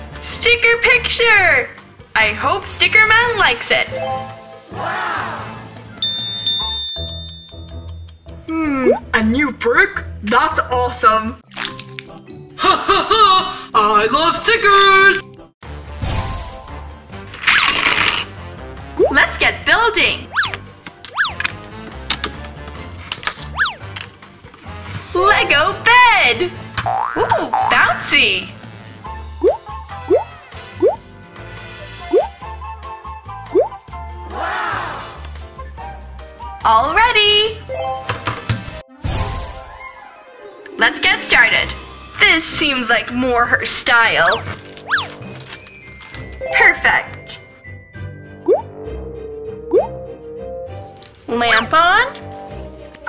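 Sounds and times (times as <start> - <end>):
background music: 0.0 - 53.0
high steady beep: 6.0 - 7.7
clock ticking effect: 6.0 - 9.0
shimmering sparkle effect: 39.0 - 42.0.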